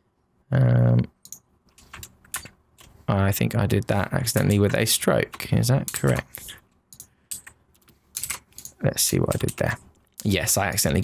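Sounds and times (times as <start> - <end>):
mouse and keyboard clicks: 1.2 - 3.0, 4.3 - 9.9.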